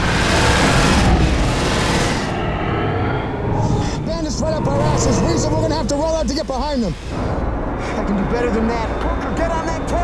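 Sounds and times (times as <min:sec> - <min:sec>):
deep rumble: 0:00.0 - 0:10.0
sci-fi fighter craft engine rush: 0:00.0 - 0:10.0.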